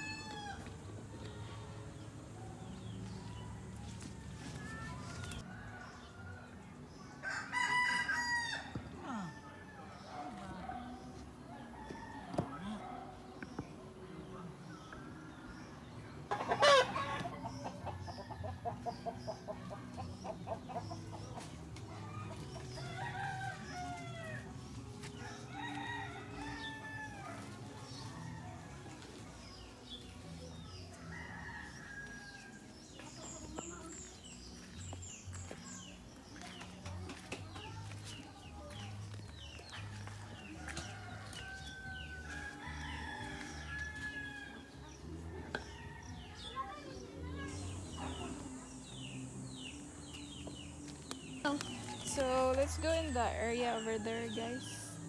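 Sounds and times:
chickens clucking: 16.2s - 22.9s.

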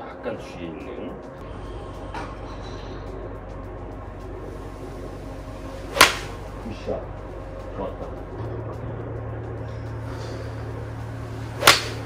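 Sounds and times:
golf iron striking ball: 5.8s - 6.4s, 11.6s - 12.0s.

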